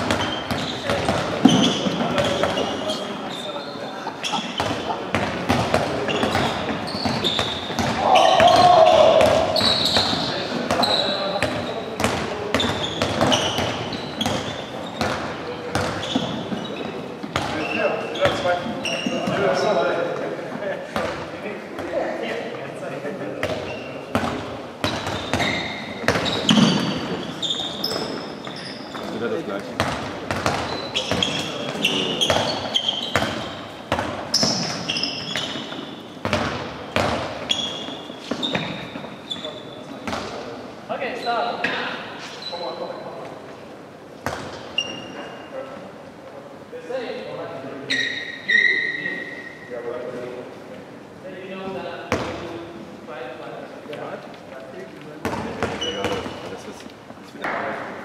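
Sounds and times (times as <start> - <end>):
balls bouncing on wooden floor: 0.0 - 3.0, 4.3 - 19.6, 23.4 - 40.4, 55.2 - 56.5
voices: 0.6 - 24.6
short high squeaks: 1.5 - 4.9, 9.5 - 11.2, 17.6 - 19.7, 24.9 - 29.0, 30.7 - 33.7, 34.3 - 36.1, 37.5 - 39.9, 42.2 - 43.0, 44.8 - 45.5, 47.8 - 49.8, 55.7 - 56.5.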